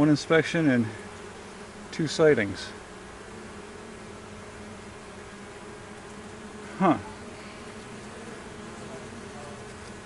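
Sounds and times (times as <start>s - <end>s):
honeybee colony humming: 0.0s - 10.0s.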